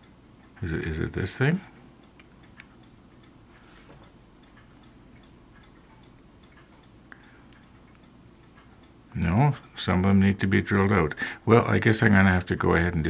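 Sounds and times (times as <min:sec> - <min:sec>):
faint regular ticking: 0:00.0 - 0:13.0.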